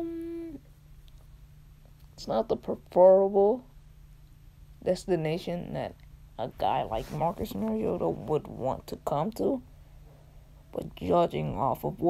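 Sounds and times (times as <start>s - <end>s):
person saying um: 0.0s - 0.6s
low steady hum: 0.0s - 12.0s.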